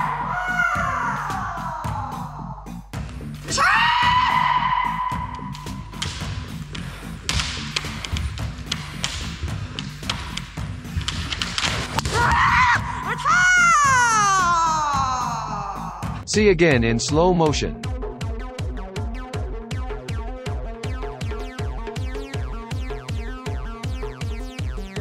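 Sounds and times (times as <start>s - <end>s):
background music: 0.0s - 25.0s
kiai shouts: 3.5s - 5.5s, 12.0s - 16.0s
bamboo sword strikes knocking: 5.9s - 12.4s.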